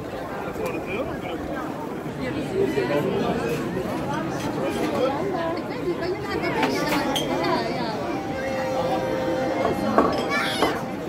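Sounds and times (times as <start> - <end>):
people chattering: 0.0 - 11.0.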